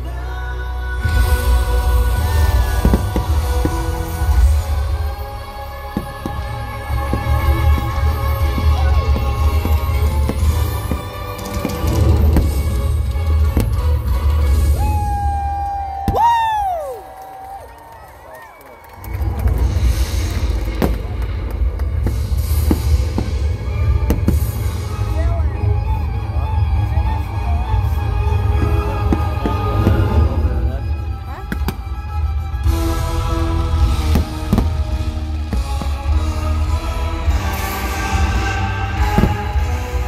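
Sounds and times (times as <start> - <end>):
music over loudspeakers: 0.0 - 14.8, 22.0 - 40.0
deep throbbing bass: 0.7 - 15.4, 19.2 - 40.0
fireworks bangs: 1.1 - 5.2, 6.0 - 14.8, 19.0 - 25.3, 32.6 - 40.0
fireworks crackling hiss: 19.4 - 25.3.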